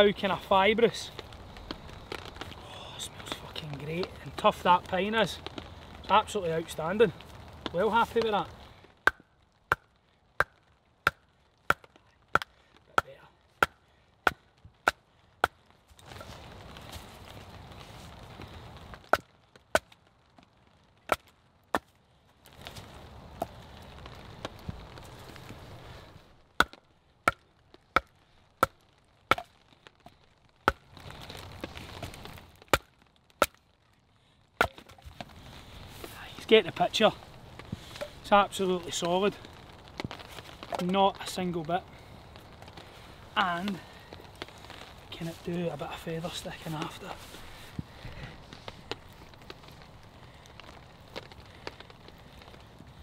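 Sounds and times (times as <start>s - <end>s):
rustling: 15.6s - 19.5s, 21.8s - 26.8s, 27.6s - 53.0s.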